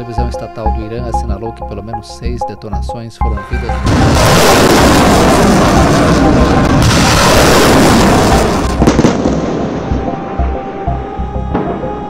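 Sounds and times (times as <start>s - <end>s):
explosions rumbling: 3.8s - 10.4s.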